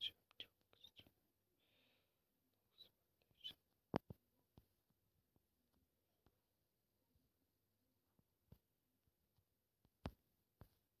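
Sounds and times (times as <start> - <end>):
person whispering: 0.0 - 1.2.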